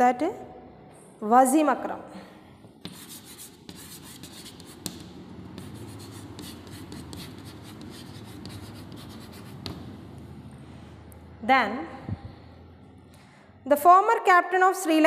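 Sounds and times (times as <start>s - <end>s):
chalk scratching on chalkboard: 2.8s - 9.9s
chalk tapping on board: 2.8s - 10.0s.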